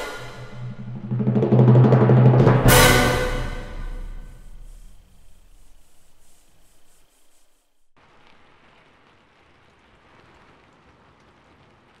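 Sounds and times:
faint steady rain: 4.7s - 12.0s.

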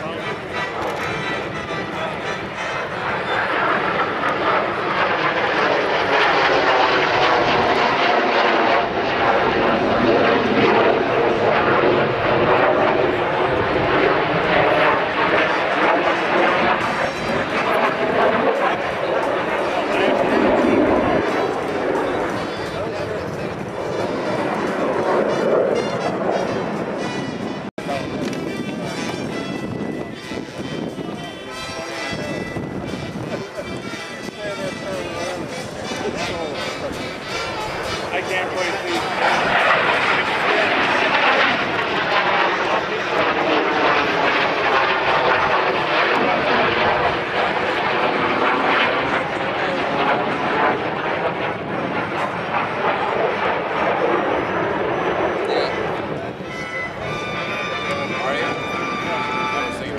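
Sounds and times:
jet engines roaring overhead: 0.0s - 59.9s.

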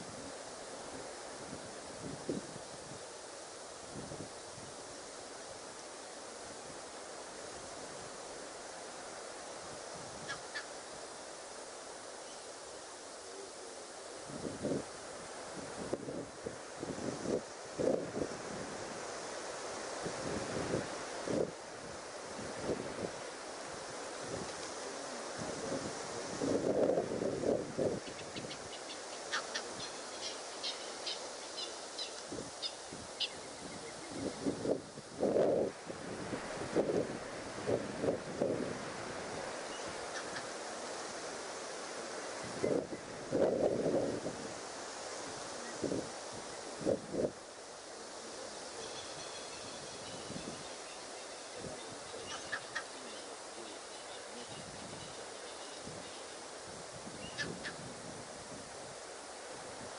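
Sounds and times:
steady outdoor hiss: 0.0s - 59.9s
wind buffeting microphone: 25.3s - 30.1s, 32.3s - 40.4s, 42.4s - 47.4s, 49.1s - 50.7s, 55.8s - 59.0s.

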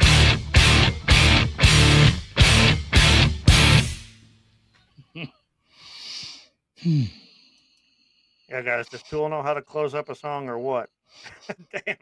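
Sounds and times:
heavy rock song: 0.0s - 4.1s
man sighing: 4.9s - 7.8s.

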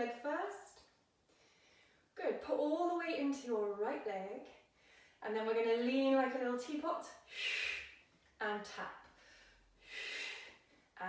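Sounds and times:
woman breathing out: 9.2s - 10.9s.

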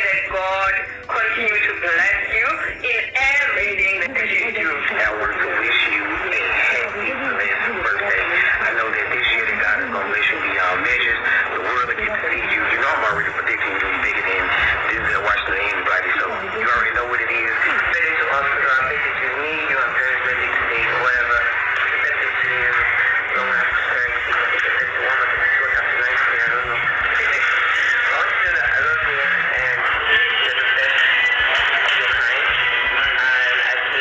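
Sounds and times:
woman talking muffled: 0.0s - 8.9s, 23.3s - 23.8s
woman talking on phone recording: 0.0s - 34.0s.

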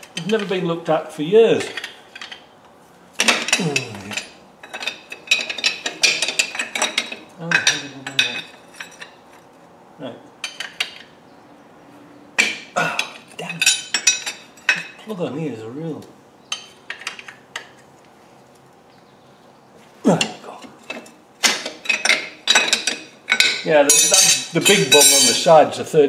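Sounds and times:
metal tools clinking: 1.6s - 2.5s, 3.2s - 9.5s, 12.4s - 15.2s, 16.5s - 17.8s, 20.1s - 25.8s.

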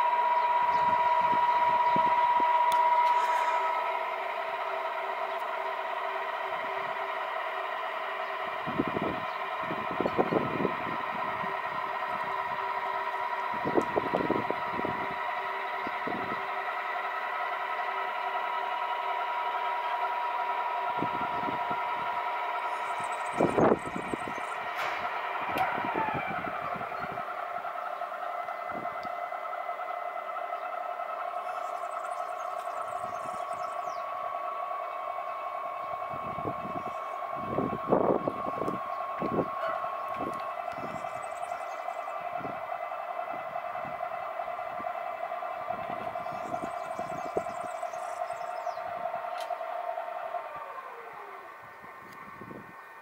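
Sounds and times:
motors whining: 0.0s - 53.0s.

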